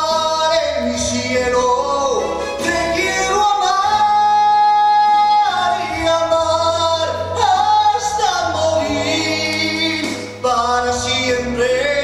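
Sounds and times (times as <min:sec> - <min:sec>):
low instrumental accompaniment: 0:00.0 - 0:12.0
man singing without words: 0:00.0 - 0:12.0.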